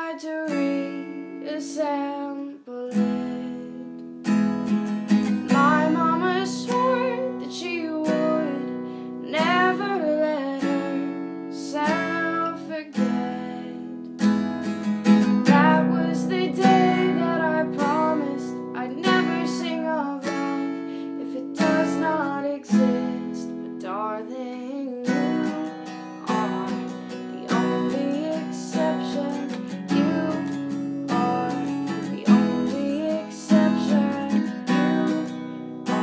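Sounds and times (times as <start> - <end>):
acoustic guitar strummed chords: 0.0 - 2.0, 2.9 - 36.0
woman singing slow ballad: 0.0 - 4.1, 5.4 - 14.0, 15.4 - 36.0.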